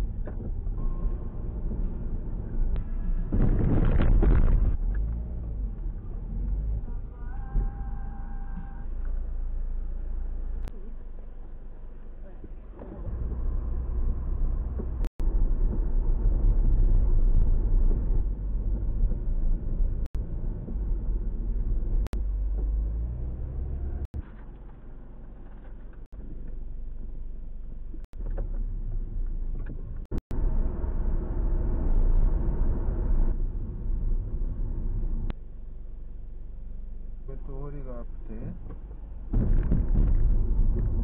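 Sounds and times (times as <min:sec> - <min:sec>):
car engine and road noise: 0:00.0 - 0:41.0.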